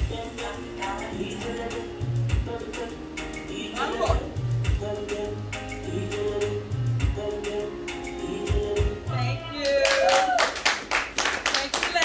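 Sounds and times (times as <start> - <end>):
group clapping unevenly: 9.6 - 12.0.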